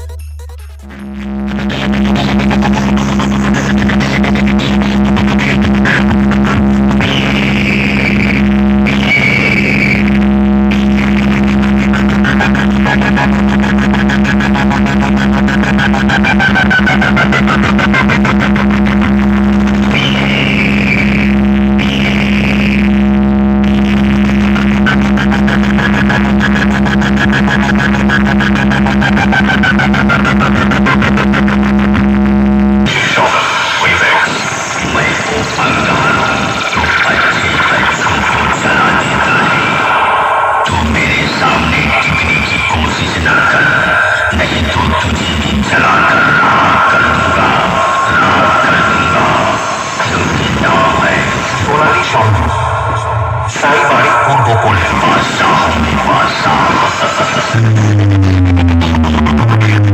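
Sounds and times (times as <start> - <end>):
loud music through speakers: 0.0 - 59.9.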